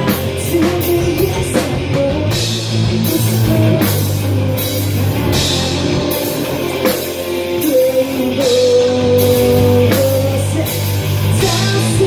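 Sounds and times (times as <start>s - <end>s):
bass guitar: 0.0s - 12.0s
drum kit with cymbals: 0.0s - 12.0s
electric guitars: 0.0s - 12.0s.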